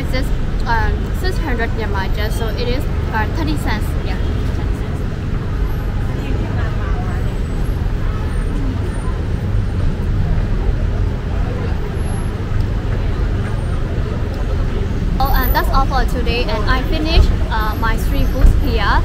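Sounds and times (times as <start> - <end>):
faint voices: 0.0 - 19.0
road traffic rumble: 0.0 - 19.0.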